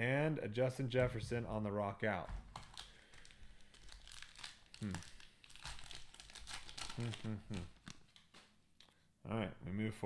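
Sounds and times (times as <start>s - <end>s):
wrapper crinkling and tearing: 2.5s - 8.6s.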